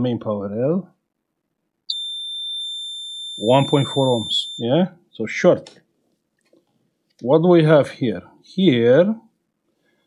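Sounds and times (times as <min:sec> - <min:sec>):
multimeter continuity beep: 0:01.9 - 0:04.7.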